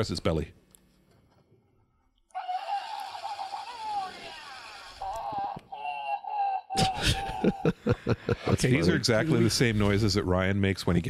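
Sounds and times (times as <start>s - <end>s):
electronic toy grumbling voice: 2.3s - 7.5s.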